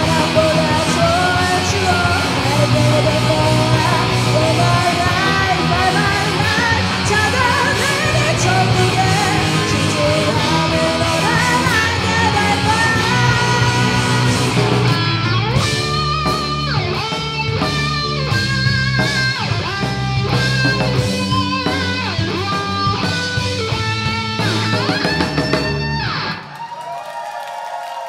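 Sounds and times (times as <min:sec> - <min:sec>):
electric guitar melody: 0:00.0 - 0:26.5
bass guitar: 0:00.0 - 0:26.6
drums: 0:00.0 - 0:28.0.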